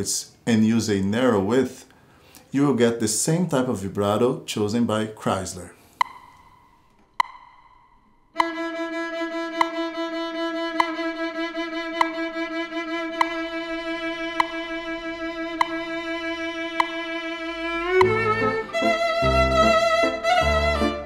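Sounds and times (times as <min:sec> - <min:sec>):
metronome clicks: 0:05.9 - 0:12.5, 0:13.1 - 0:19.8
violin bowed note with vibrato: 0:08.4 - 0:21.0.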